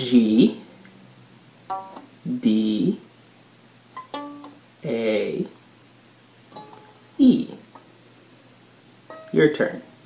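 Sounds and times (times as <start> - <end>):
violin string plucked: 1.7 - 2.1, 4.0 - 4.6, 6.6 - 7.0, 9.1 - 9.6.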